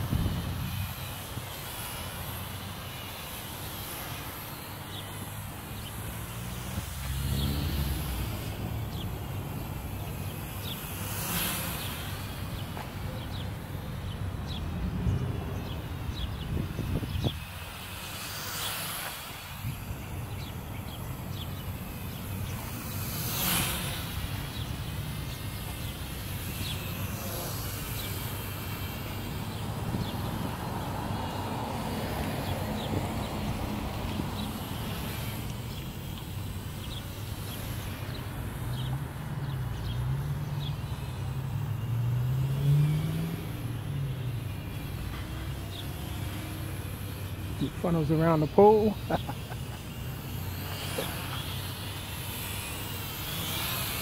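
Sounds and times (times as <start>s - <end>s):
wind on microphone: 0.0s - 1.9s, 14.8s - 17.8s.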